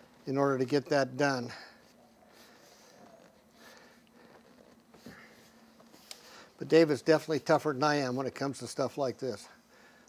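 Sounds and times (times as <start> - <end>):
leather rustling: 1.9 - 6.4.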